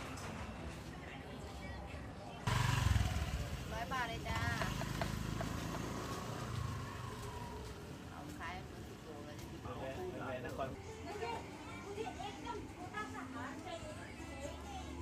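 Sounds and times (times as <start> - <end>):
motorcycle engine running: 2.5 - 6.8
people talking: 3.2 - 4.9.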